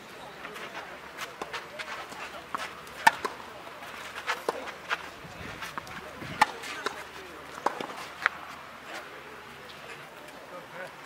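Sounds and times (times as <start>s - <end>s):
tennis balls struck by racquets: 0.6s - 9.1s.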